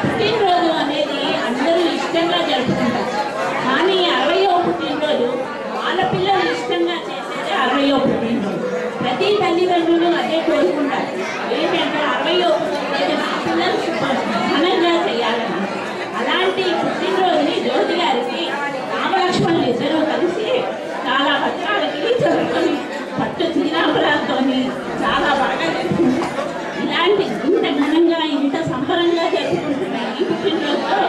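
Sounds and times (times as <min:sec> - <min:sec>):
background chatter: 0:00.0 - 0:31.0
woman speaking into a microphone: 0:00.0 - 0:31.0.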